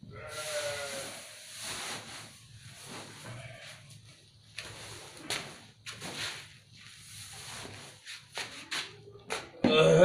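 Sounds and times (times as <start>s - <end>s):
grass and sack rustling: 0.3s - 8.7s.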